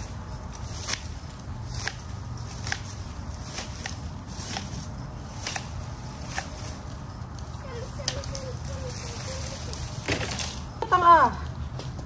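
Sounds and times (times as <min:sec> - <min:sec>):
pruning shears snipping stems: 0:00.0 - 0:10.6
leaves rustling: 0:00.0 - 0:12.0
steady low rumble: 0:00.0 - 0:12.0.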